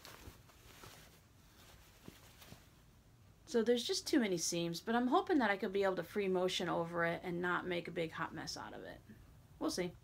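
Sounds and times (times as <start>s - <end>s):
fabric rustling and handling: 0.0s - 3.0s.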